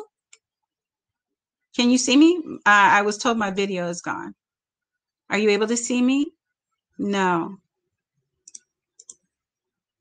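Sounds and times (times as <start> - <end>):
faint computer mouse clicks: 0.2 - 0.5, 8.4 - 9.4.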